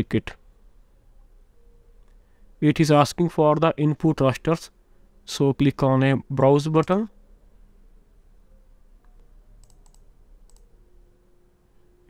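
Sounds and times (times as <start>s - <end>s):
computer mouse clicks: 9.0s - 10.7s.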